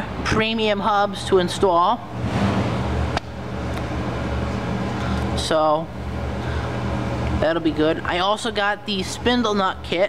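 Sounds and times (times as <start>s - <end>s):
motor vehicle engine humming: 2.0s - 8.1s.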